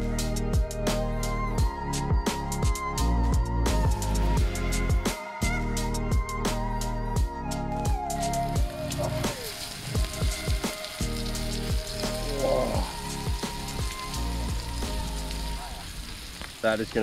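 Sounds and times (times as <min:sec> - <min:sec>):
background music: 0:00.0 - 0:16.6
fish frying in hot oil: 0:08.4 - 0:17.0.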